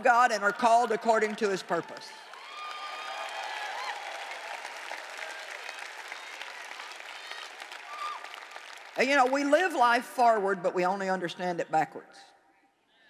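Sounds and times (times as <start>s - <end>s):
audience applauding: 0.0s - 9.8s.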